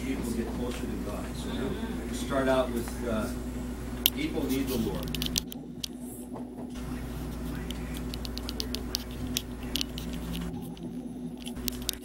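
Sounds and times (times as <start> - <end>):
steady low hum: 0.0 - 12.0
objects being handled clicking: 4.9 - 6.0.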